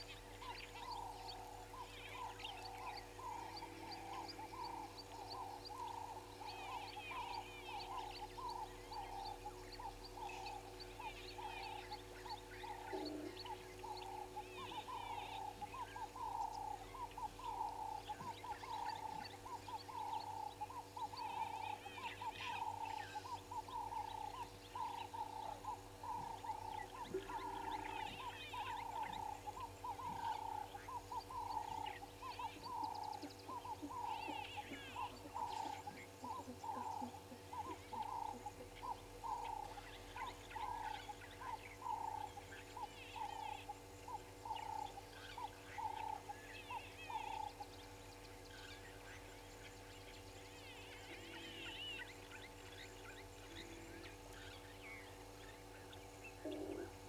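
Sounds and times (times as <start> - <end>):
birds chirping: 0.0 - 57.0
repeated animal call: 0.0 - 57.0.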